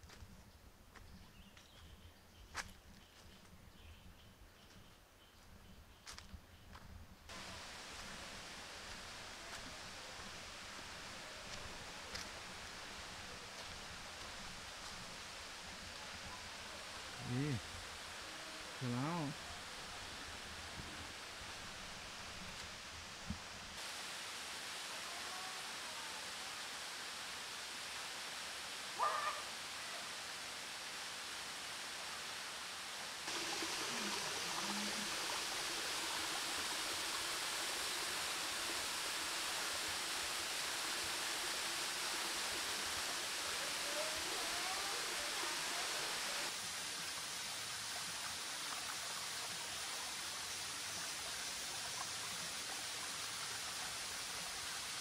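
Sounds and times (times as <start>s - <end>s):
waterfall rushing: 7.3s - 22.6s, 23.8s - 55.0s.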